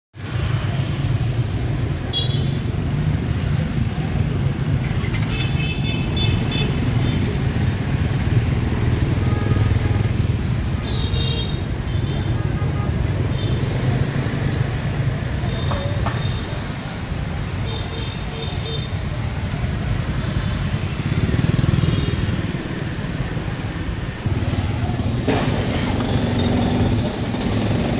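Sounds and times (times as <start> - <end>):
motorbike engines passing: 0.2 - 27.9.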